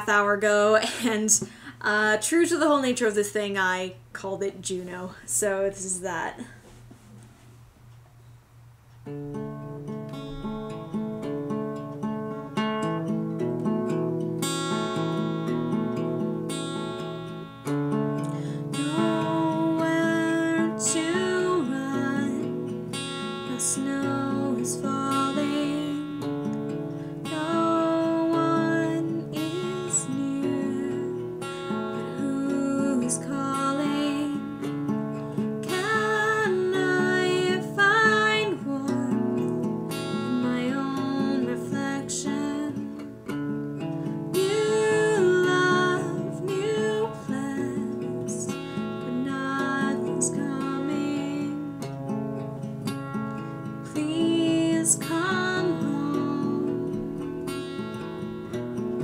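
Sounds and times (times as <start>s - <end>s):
woman singing: 0.0s - 6.6s, 18.7s - 26.4s, 27.2s - 43.2s, 44.3s - 51.9s, 53.8s - 57.9s
acoustic guitar chords: 0.0s - 59.0s.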